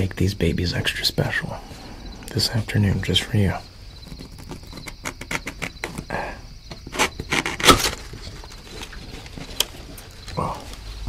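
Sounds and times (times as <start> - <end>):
cardboard box crackling: 4.0 - 6.1, 6.7 - 11.0.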